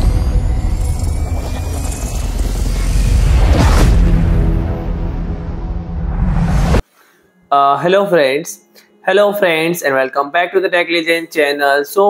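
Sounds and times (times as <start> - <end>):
faint rising whine: 0.0 - 6.8.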